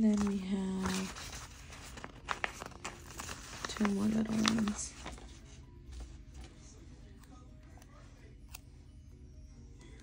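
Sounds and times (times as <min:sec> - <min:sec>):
paper sticker sheet crinkling: 0:00.0 - 0:06.8.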